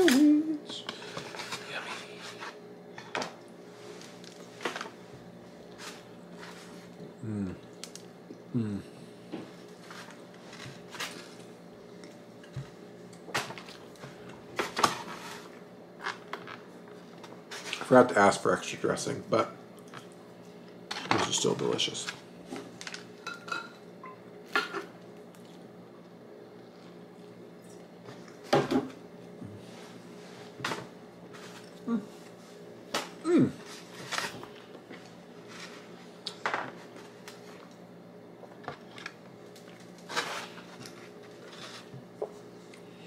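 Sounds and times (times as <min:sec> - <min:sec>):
low hum with full mouth: 0:00.0 - 0:13.0, 0:29.2 - 0:30.6, 0:31.2 - 0:36.4, 0:37.0 - 0:43.0.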